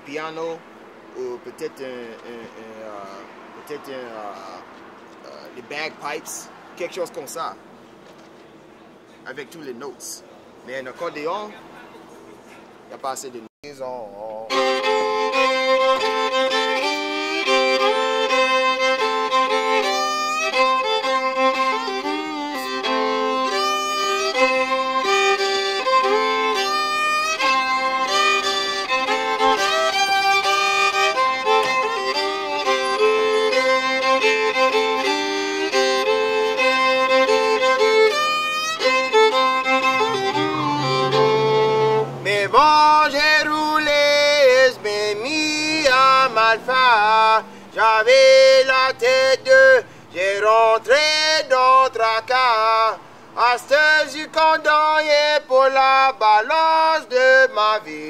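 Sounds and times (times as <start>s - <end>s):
unaccompanied fiddle playing: 14.4s - 57.8s.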